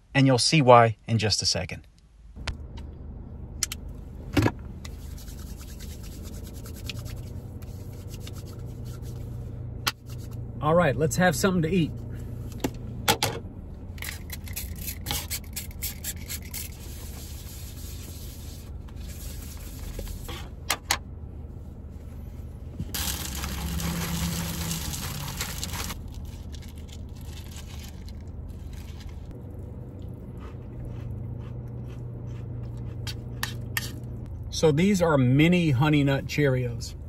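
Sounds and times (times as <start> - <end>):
packaging rustling: 23.0 - 29.3.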